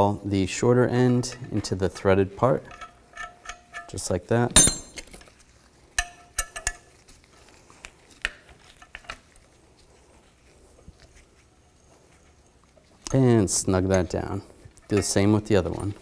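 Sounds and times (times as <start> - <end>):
wrench and nuts clinking on metal: 2.6 - 5.2.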